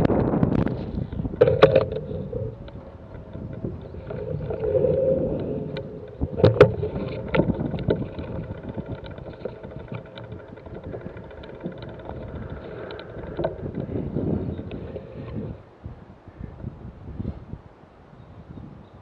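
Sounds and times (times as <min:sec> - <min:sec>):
bike knocks and rattles: 0:00.0 - 0:15.1
bike tyre rumble: 0:00.0 - 0:17.5
wind on microphone: 0:00.0 - 0:19.0
fine ticking: 0:01.1 - 0:15.6.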